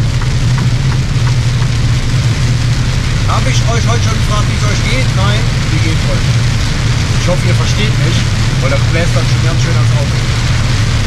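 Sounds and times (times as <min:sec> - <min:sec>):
hiss of spray and rain: 0:00.0 - 0:11.0
truck engine drone: 0:00.0 - 0:11.0
tyres on wet road: 0:00.0 - 0:11.0.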